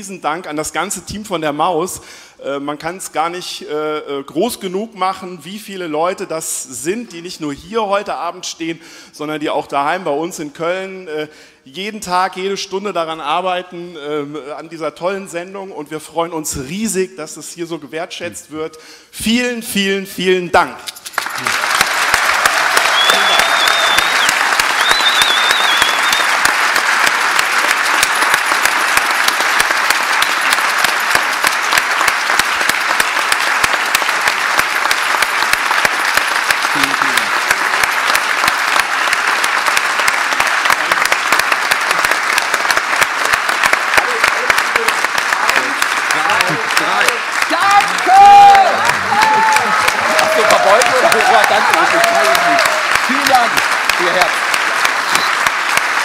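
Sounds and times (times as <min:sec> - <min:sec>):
large audience applauding: 0:21.0 - 0:56.0.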